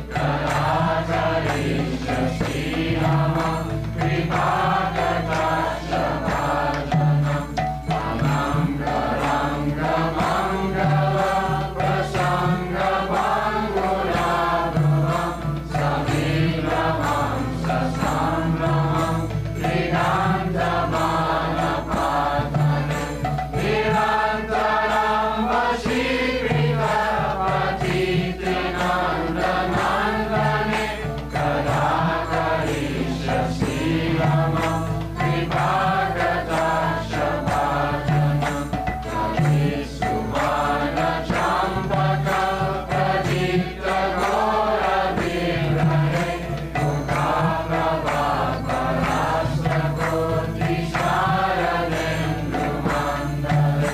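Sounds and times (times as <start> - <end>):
group chanting devotional song: 0.0 - 53.9
regular percussive beat: 0.0 - 53.9.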